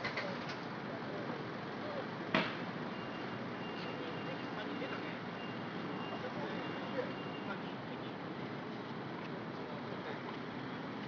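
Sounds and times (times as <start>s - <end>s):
street background din: 0.0s - 11.0s.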